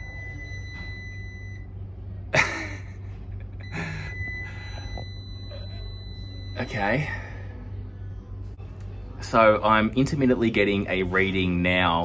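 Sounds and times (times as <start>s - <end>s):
meter continuity beeper tone: 0.0s - 1.8s, 3.6s - 7.5s
low steady hum: 0.0s - 12.0s.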